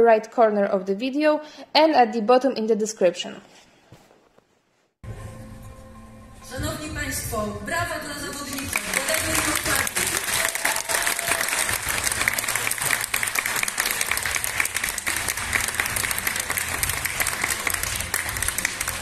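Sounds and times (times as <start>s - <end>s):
audience applauding: 8.2s - 19.0s.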